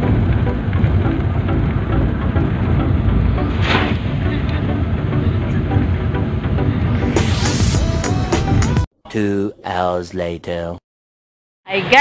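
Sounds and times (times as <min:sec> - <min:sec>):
vehicle cabin engine rumble: 0:00.0 - 0:07.2
brief swish: 0:03.5 - 0:04.1.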